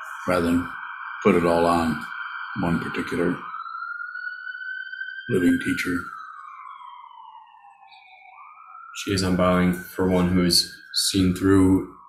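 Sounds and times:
faint siren-like wail: 0.0 - 12.0.

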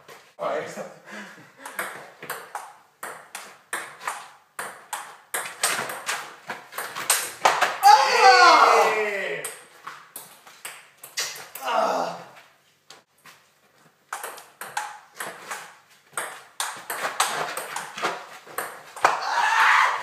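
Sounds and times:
person shouting: 7.8 - 9.4, 11.6 - 12.3, 19.2 - 20.0.

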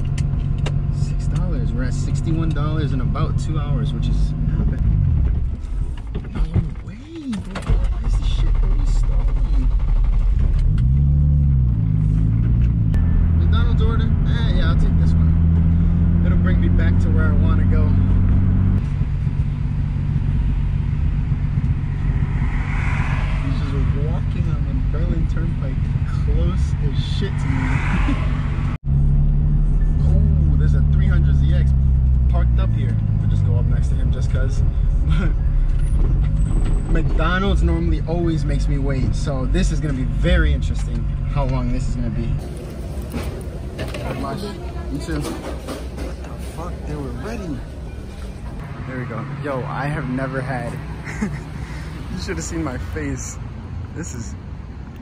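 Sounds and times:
car engine from inside cabin: 0.0 - 27.4.

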